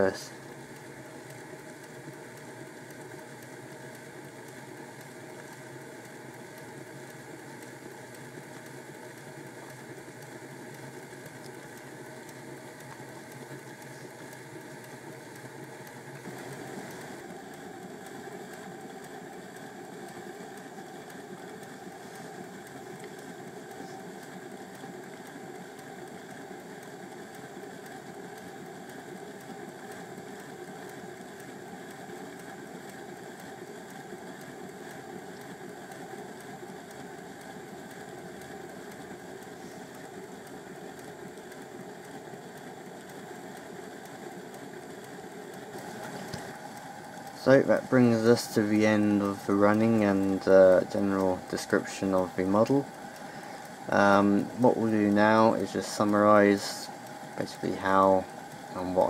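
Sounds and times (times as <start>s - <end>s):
faint clicking of pump: 0.0s - 59.0s
model train motor whirring: 7.3s - 59.0s.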